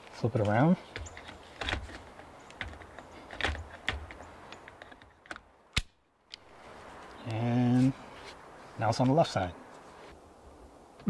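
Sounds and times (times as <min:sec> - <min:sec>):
plastic and metal knocks and rattles: 0:00.9 - 0:05.4.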